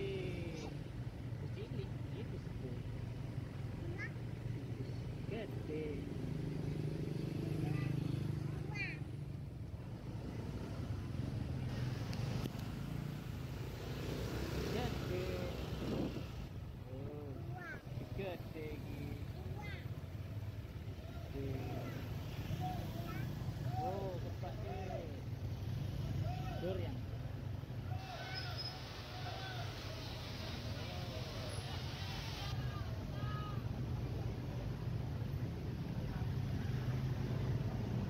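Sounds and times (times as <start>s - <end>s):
people's voices: 0.0s - 9.1s
low engine rumble of buses: 0.0s - 38.0s
street traffic: 0.0s - 38.0s.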